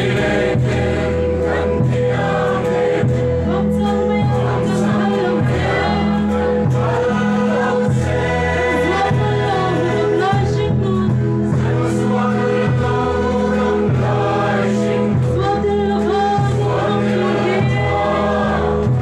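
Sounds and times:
crowd singing in unison: 0.0s - 19.0s.

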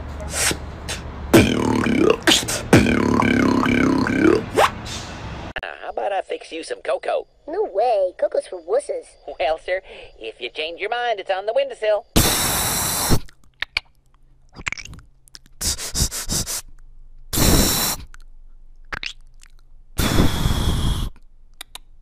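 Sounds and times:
beatboxer hissing bursts: 0.2s - 5.0s, 12.2s - 13.3s, 15.6s - 16.7s, 17.3s - 18.1s, 20.0s - 21.2s
mouth clicks: 0.3s - 4.7s, 12.2s - 22.0s.

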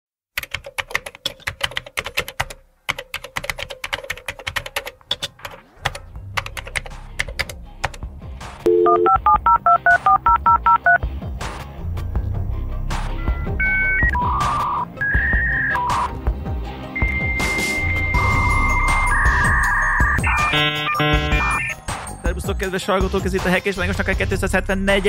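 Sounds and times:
rapid keyboard typing: 0.4s - 8.1s
low bass music: 6.1s - 15.0s, 23.2s - 25.0s
touch-tone dialing beeps: 8.7s - 11.0s, 13.6s - 16.1s, 17.0s - 21.8s
two-note telephone tone: 8.7s - 11.0s, 17.0s - 21.7s.

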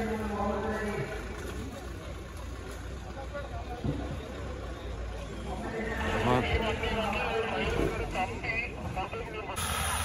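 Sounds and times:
off-road vehicle engine running low: 0.0s - 10.0s
spectators talking: 0.0s - 10.0s.

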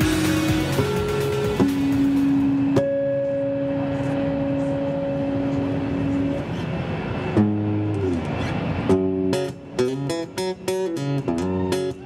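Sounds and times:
amplified acoustic guitar notes ringing: 0.0s - 12.0s.

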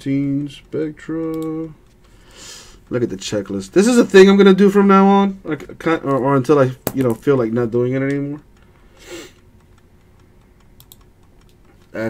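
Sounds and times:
mouse and keyboard clicks: 6.8s - 12.0s.

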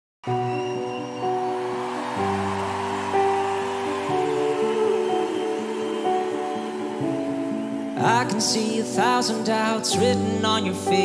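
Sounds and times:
keyboard playing sustained chords: 0.3s - 11.0s.

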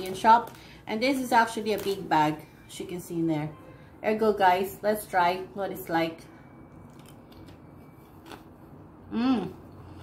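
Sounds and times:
person crunching potato crisp: 6.8s - 8.8s.

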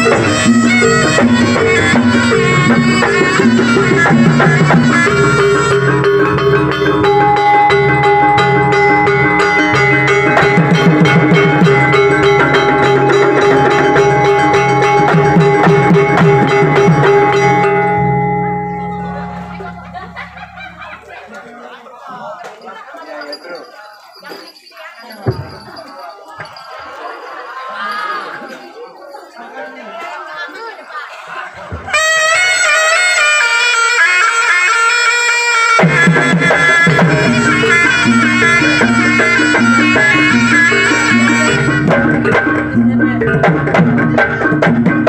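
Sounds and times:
reedy wind instrument melody: 0.0s - 21.0s, 31.9s - 45.0s
gamelan metal keys and gongs: 0.0s - 21.3s, 22.6s - 31.3s, 35.7s - 45.0s
crowd chatter: 0.0s - 45.0s.

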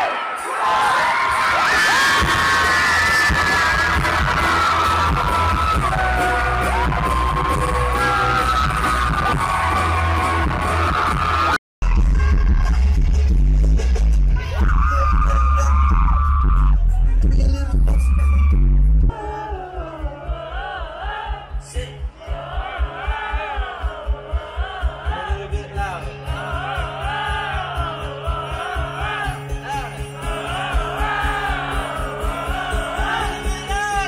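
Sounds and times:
live pop music with heavy bass: 0.0s - 34.0s.

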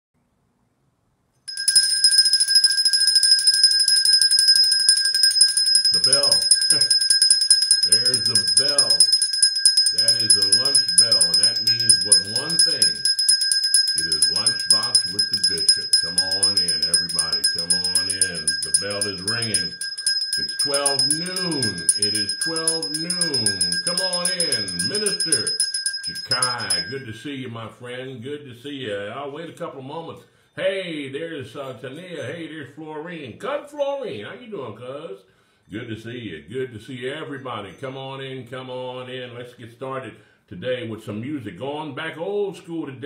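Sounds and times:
high-pitched ringing tone: 1.5s - 27.2s
man talking: 5.9s - 6.9s, 7.8s - 9.1s, 9.9s - 13.0s, 14.0s - 19.8s, 20.4s - 43.0s.

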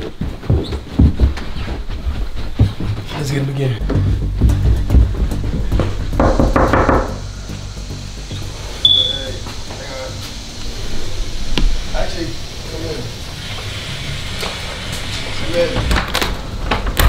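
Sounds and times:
background music: 3.1s - 11.4s
knuckles knocking on door: 6.2s - 7.2s.

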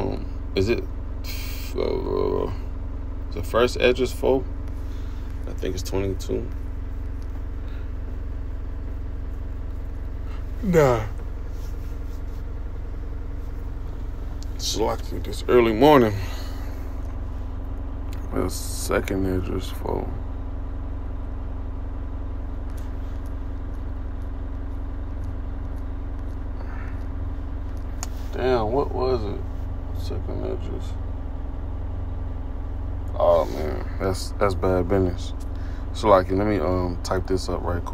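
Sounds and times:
low mechanical rumble: 0.0s - 37.9s.

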